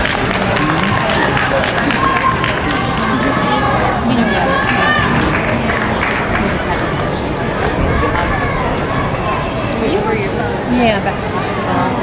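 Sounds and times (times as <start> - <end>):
people clapping: 0.0 - 8.6
crowd chattering: 0.0 - 12.0.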